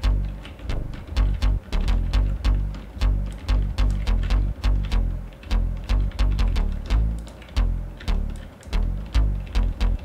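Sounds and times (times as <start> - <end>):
synth bass notes: 0.0 - 10.0.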